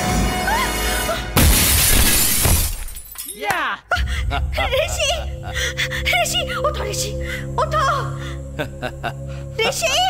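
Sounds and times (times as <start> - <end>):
glass shattering: 1.4 - 3.5.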